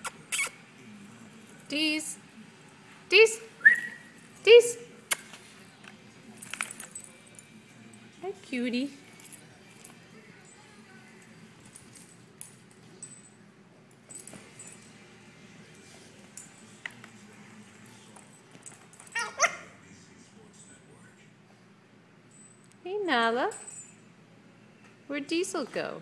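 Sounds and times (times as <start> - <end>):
collar tags jingling: 1.4 - 19.6
puppy yipping: 19.2 - 19.8.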